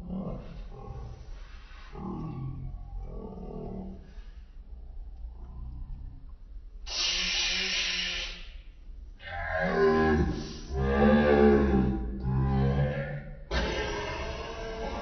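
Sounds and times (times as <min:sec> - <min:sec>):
wavering groan: 0:00.0 - 0:04.4, 0:09.2 - 0:15.0
hissing breath through mouth: 0:06.9 - 0:08.5
people grunting: 0:11.6 - 0:15.0.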